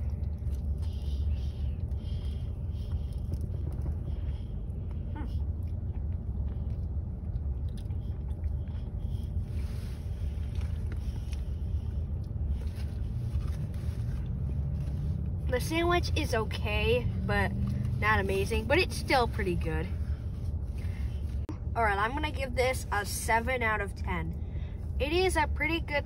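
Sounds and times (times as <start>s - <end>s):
person chewing: 0.0s - 14.4s
low rumble in car cabin: 0.0s - 26.0s.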